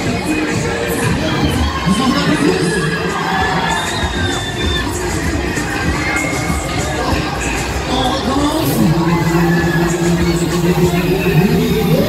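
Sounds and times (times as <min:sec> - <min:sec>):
crowd din: 0:00.0 - 0:12.0
riders shouting and screaming: 0:00.0 - 0:12.0.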